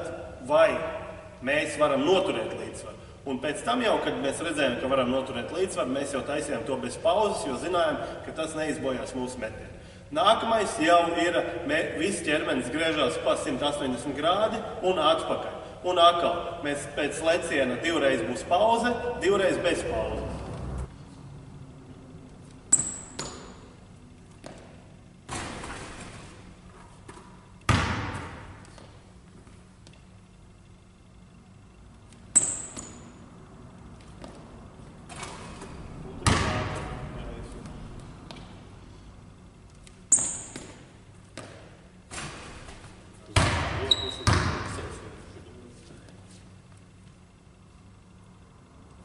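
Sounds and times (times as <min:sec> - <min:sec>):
sneaker squeaks: 0:22.6 - 0:29.6, 0:32.3 - 0:33.2, 0:40.0 - 0:41.7, 0:42.6 - 0:44.8
basketball bouncing on wooden floor: 0:27.1 - 0:29.0, 0:36.2 - 0:36.8, 0:43.4 - 0:44.7.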